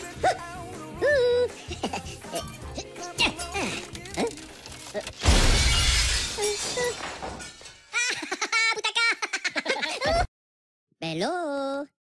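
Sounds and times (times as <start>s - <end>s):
glass shattering: 4.4s - 8.2s.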